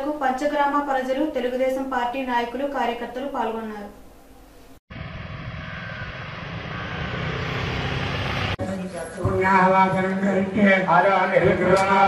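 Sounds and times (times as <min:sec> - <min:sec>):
noisy din: 0:04.9 - 0:10.1.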